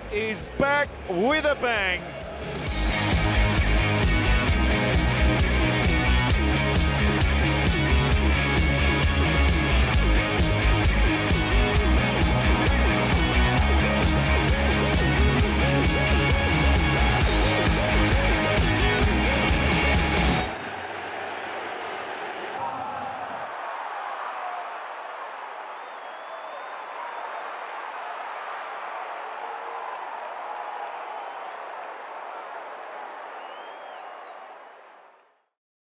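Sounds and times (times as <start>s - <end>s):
stadium crowd cheering and chanting: 0.0s - 35.4s
loud backing music with beat: 0.1s - 20.5s.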